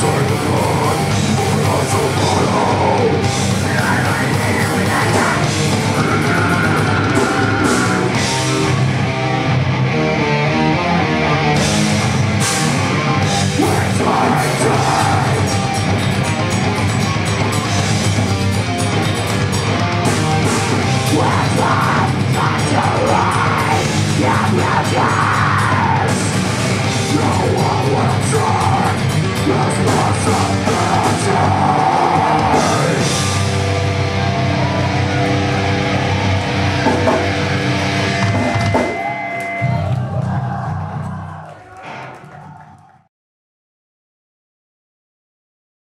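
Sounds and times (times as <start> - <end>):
vocalist screaming: 0.0 - 8.4, 13.4 - 15.5, 20.9 - 33.2, 38.0 - 43.0
heavy metal band playing: 0.0 - 42.6.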